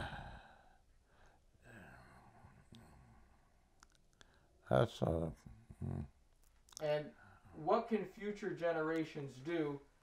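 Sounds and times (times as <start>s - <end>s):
man sighing: 0.0s - 0.8s.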